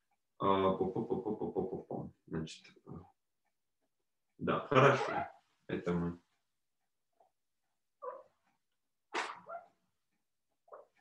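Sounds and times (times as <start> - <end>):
dog barking: 8.0 - 8.3, 9.2 - 9.8.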